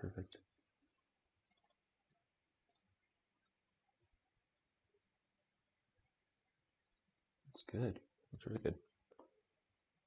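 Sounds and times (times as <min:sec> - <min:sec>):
computer mouse clicks: 0:01.4 - 0:01.9, 0:02.6 - 0:03.1.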